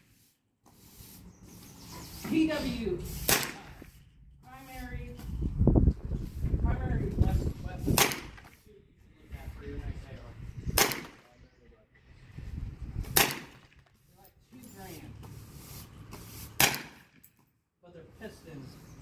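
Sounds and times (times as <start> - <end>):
rifle shots cracking: 10.8 - 11.2, 13.2 - 13.7, 16.6 - 17.0.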